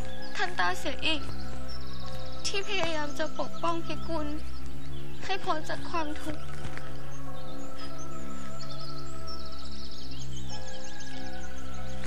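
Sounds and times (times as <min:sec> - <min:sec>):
high bird-like chirping trills: 0:00.0 - 0:12.0
soft dramatic sustained chords: 0:00.0 - 0:12.0.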